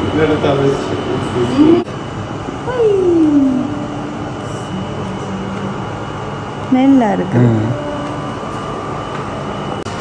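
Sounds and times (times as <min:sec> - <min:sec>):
fan or air conditioning running: 0:00.0 - 0:10.0
thin high whine: 0:00.0 - 0:10.0.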